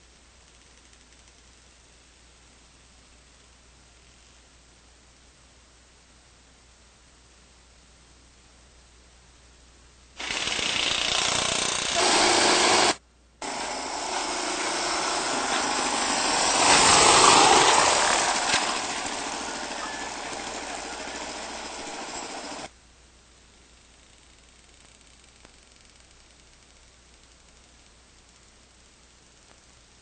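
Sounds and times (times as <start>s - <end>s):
dirt bike engine running: 10.2s - 22.7s.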